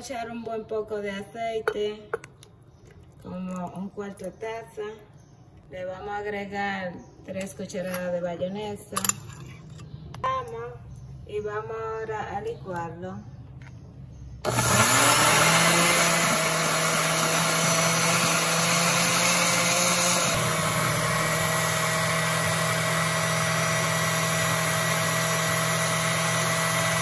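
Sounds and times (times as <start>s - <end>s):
blender motor running: 14.4s - 27.0s.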